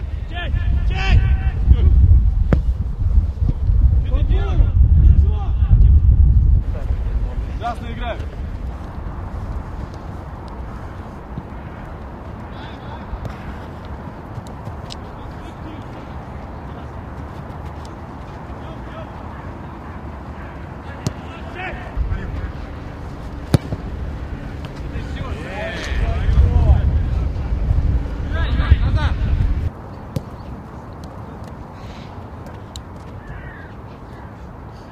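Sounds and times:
wind on microphone: 0.0 - 11.4, 22.0 - 29.7.

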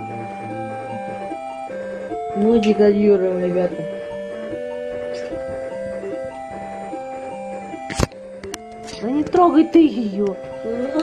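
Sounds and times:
retro video game music: 0.0 - 11.0.

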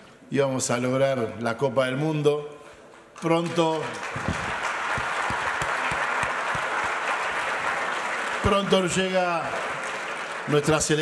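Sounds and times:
nearer claps: 3.2 - 10.7
audience applauding: 3.2 - 11.0.

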